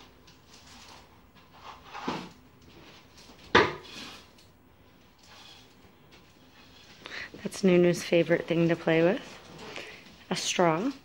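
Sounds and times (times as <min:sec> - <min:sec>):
broom brushing floor: 0:00.0 - 0:04.3, 0:04.9 - 0:11.0
broom and dustpan knocking floor: 0:03.4 - 0:04.2.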